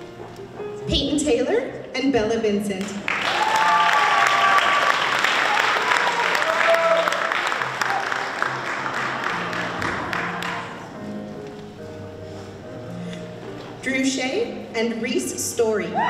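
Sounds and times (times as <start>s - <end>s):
quiet background music: 0.0s - 3.8s, 5.1s - 16.0s
audience applause: 3.0s - 10.9s.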